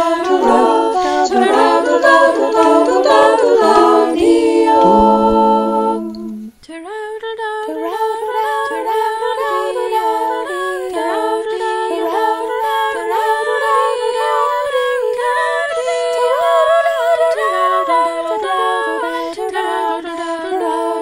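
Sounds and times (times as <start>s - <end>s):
women singing a cappella: 0.0s - 21.0s.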